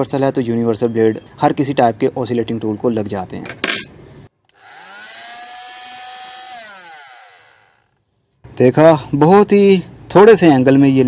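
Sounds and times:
multi-tool whining and winding down: 4.5 - 8.0.

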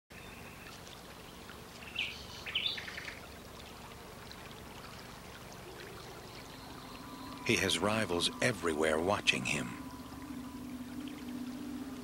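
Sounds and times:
stream trickling: 0.1 - 12.0
bird chirps: 1.8 - 3.2, 6.0 - 8.7.

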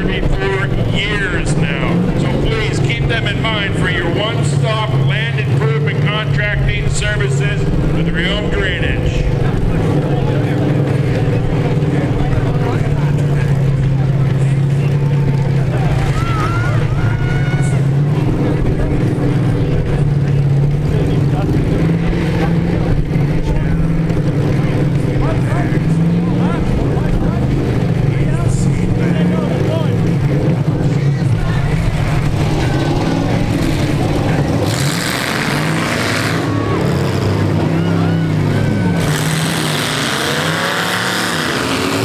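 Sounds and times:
truck engines revving: 0.0 - 42.0
voices: 0.0 - 42.0.

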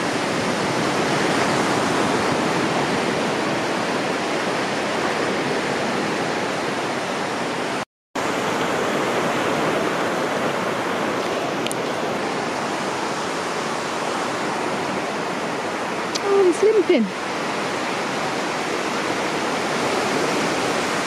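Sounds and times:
sea surf breaking on shore: 0.0 - 21.0.

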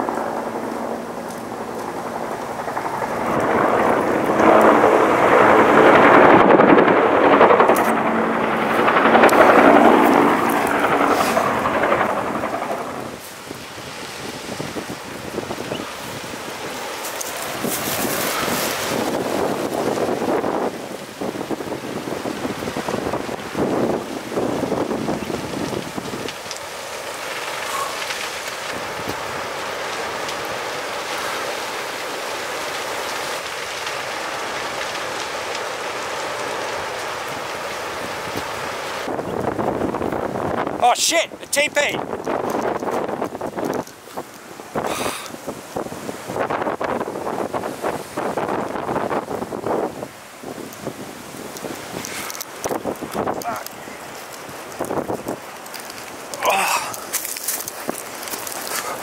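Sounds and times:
helicopter flying overhead: 0.0 - 20.8
fire crackles and pops: 0.0 - 59.0
rush of flames: 0.0 - 59.0
wind: 0.0 - 59.0.

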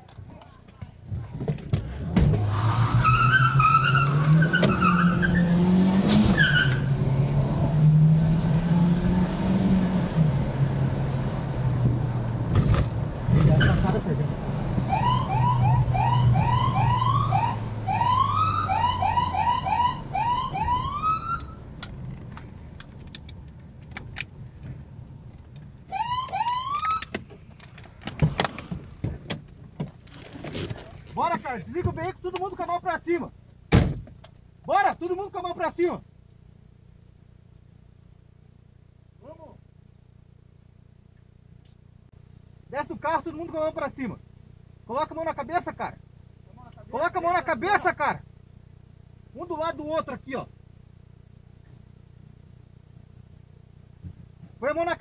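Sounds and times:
car engine accelerating: 1.8 - 22.5
police siren whoops: 14.9 - 21.6, 25.9 - 27.1.

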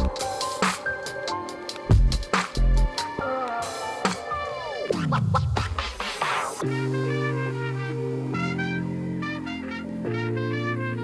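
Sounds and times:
dj scratching: 0.0 - 6.6
background music: 0.0 - 11.0.

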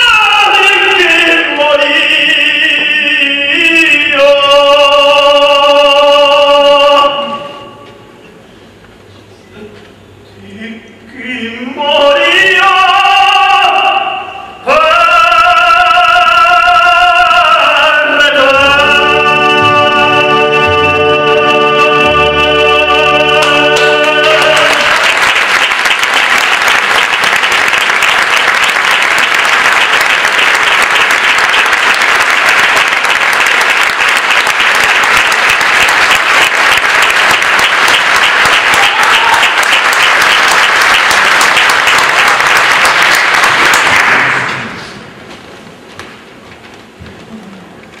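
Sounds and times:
orchestra sustained chord: 18.6 - 25.0
audience applause: 23.3 - 44.7.

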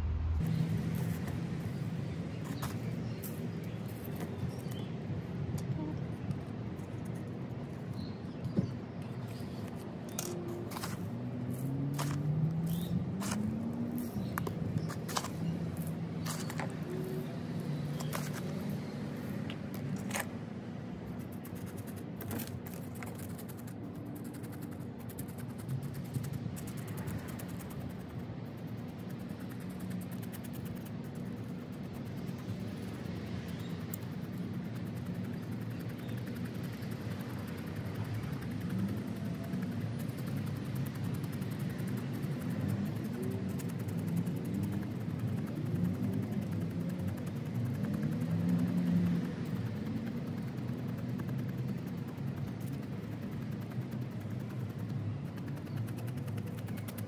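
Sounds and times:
vehicle engine hum: 0.0 - 57.0.

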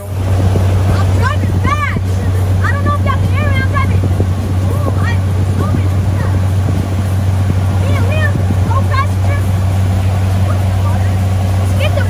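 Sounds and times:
motorboat engine drone: 0.0 - 12.0
wind and water rushing: 0.0 - 12.0.

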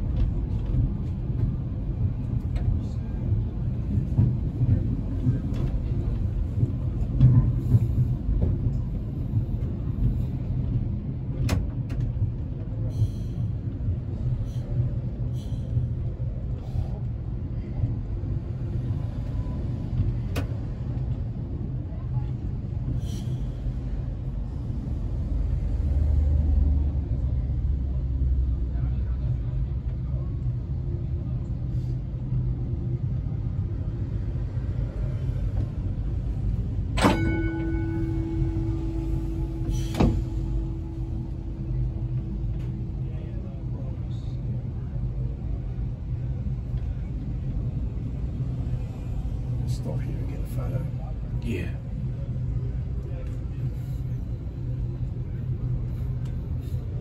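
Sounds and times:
tram rumbling along track: 0.0 - 57.0
tram gong ringing: 36.8 - 44.2.

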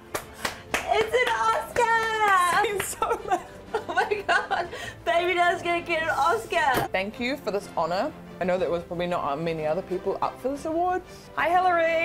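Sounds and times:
hands clapping quickly: 0.0 - 3.1.

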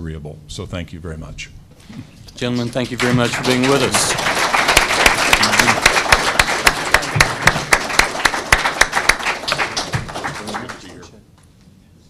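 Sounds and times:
audience applause: 2.5 - 11.1.

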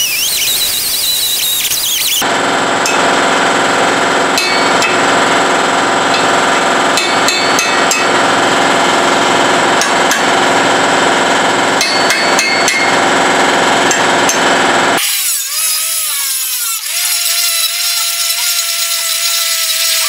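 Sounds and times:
loud machine hum: 0.0 - 20.0
hammer striking steel chisel: 4.4 - 5.0, 7.0 - 8.1, 11.8 - 13.0.

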